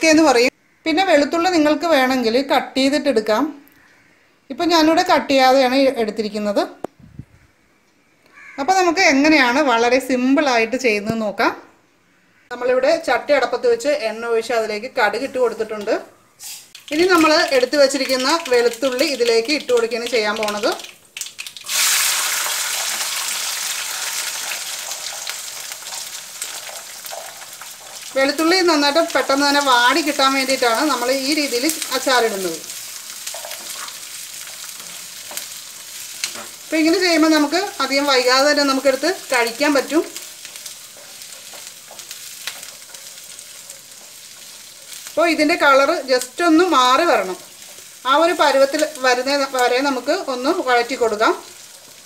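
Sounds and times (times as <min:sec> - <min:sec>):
garlic sizzling in hot oil: 0:13.0 - 0:52.0.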